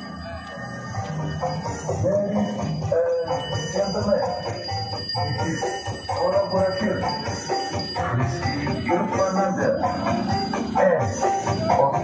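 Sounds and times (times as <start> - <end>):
jingling bell-like percussion: 0.0 - 12.0
loud music from sound system: 0.0 - 12.0.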